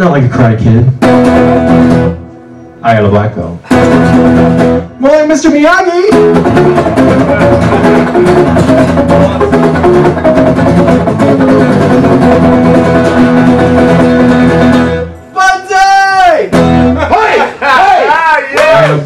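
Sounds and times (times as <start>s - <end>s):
acoustic guitar strumming chords: 0.9s - 15.4s, 16.4s - 17.5s
man singing: 7.0s - 8.5s.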